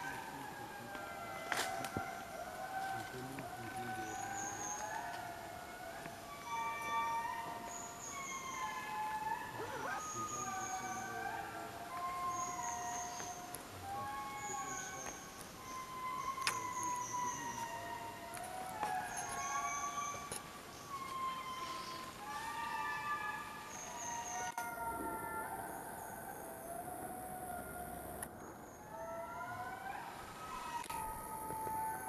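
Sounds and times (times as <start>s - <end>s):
lemurs singing in chorus: 0.0s - 26.2s.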